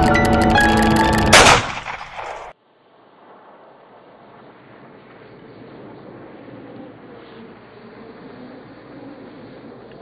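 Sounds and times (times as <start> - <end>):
film trailer music: 0.0 - 1.6
loud boom-like hit: 1.3 - 2.4.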